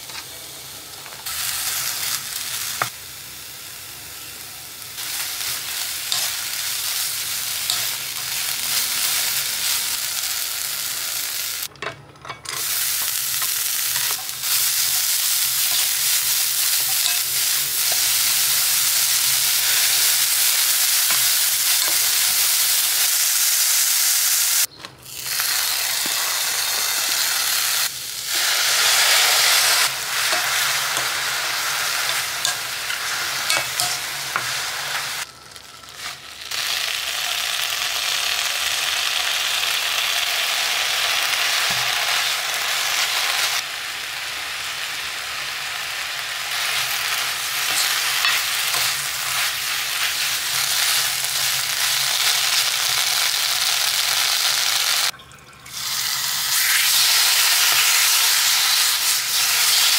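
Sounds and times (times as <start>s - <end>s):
vegetables sizzling in a wok: 0.0s - 11.7s, 12.5s - 55.1s, 55.7s - 59.9s.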